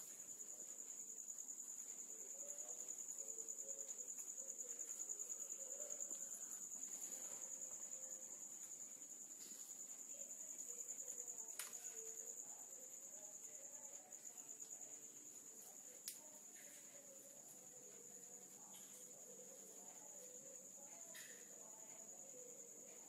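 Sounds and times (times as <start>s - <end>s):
insects chirping: 0.0s - 23.0s.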